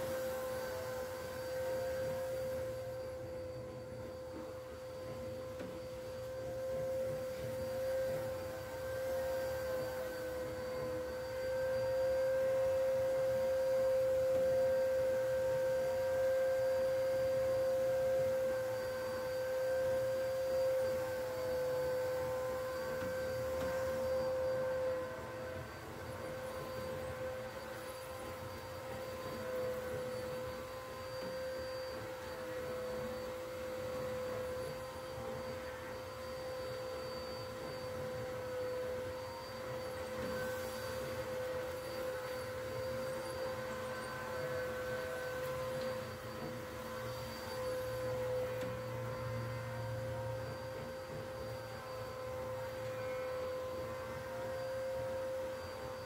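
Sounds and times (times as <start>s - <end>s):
vacuum cleaner motor whine: 0.0s - 56.0s.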